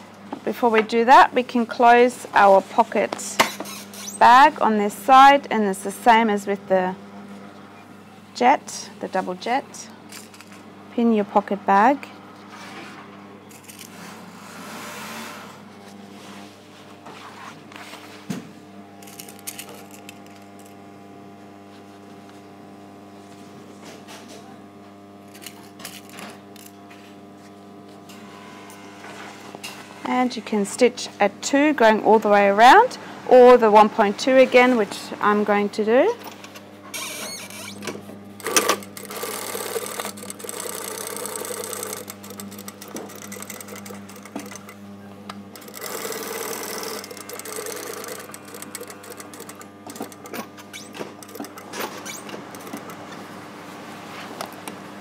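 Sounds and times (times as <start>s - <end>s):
steady electrical hum: 0.0s - 55.0s
sewing machine stitching: 38.4s - 44.8s, 45.5s - 53.2s.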